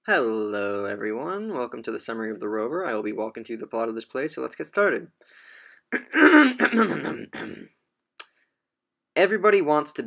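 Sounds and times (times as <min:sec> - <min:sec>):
man clearing his throat: 0:06.0 - 0:07.8.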